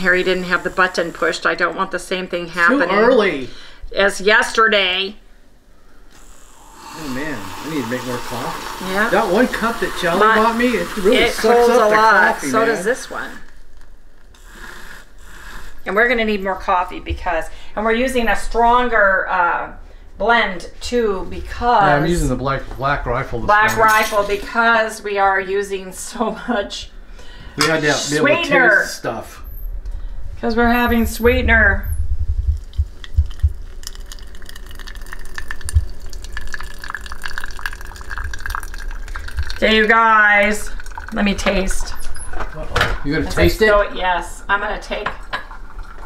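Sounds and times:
coffee trickling: 0:00.0 - 0:02.7, 0:06.5 - 0:15.2, 0:32.5 - 0:43.8, 0:44.6 - 0:46.0.

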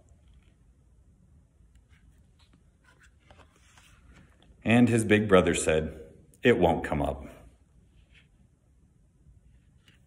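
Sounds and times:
paper rustling: 0:01.8 - 0:04.6.

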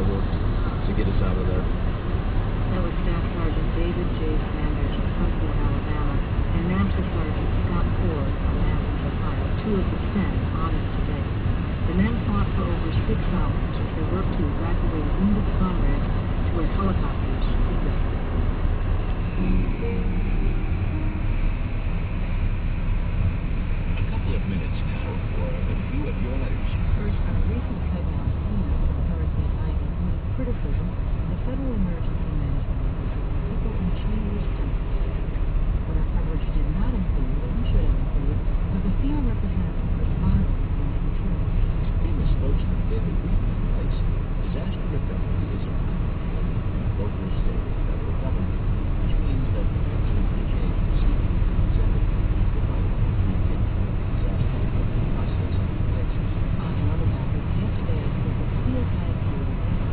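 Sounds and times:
faint radio news broadcast: 0:00.0 - 0:59.9
muffled talk: 0:00.0 - 0:59.9
steady low rumble: 0:00.0 - 0:59.9.

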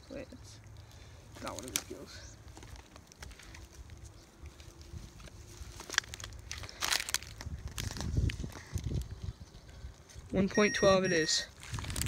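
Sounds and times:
dry grass crunching and rustling: 0:01.2 - 0:10.5, 0:11.5 - 0:12.0.

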